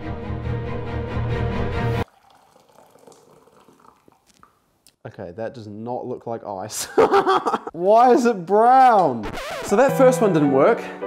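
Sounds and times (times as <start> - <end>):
liquid trickling into jug: 2.0 - 4.8.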